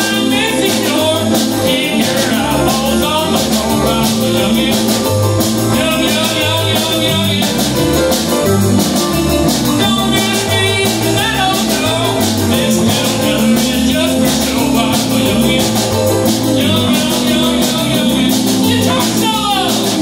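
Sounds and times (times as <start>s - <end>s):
bass line: 0.0s - 20.0s
drum beat: 0.0s - 20.0s
electric and acoustic guitars: 0.0s - 20.0s
keyboard: 0.0s - 20.0s
steel guitar: 0.0s - 20.0s.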